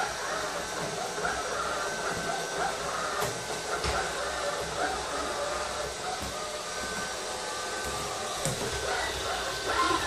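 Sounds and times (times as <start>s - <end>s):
robot vacuum cleaner whirring: 0.0s - 10.0s.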